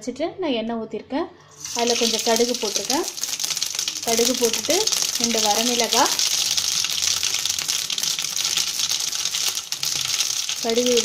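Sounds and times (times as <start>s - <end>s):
oil sizzling: 1.5s - 11.0s
seeds popping in oil: 1.6s - 11.0s.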